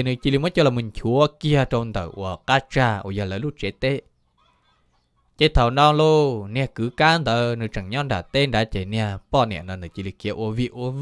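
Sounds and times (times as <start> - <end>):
man calling out: 0.0 - 4.0, 5.4 - 11.0.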